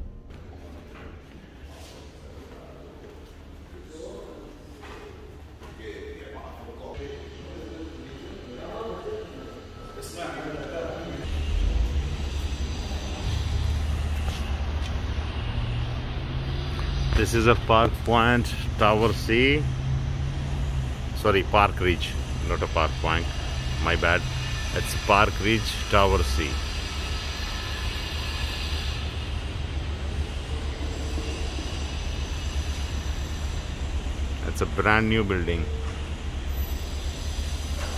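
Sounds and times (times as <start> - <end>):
steady low hum: 0.0 - 37.9
indistinct voices talking: 16.8 - 26.7
hiss: 36.5 - 37.9.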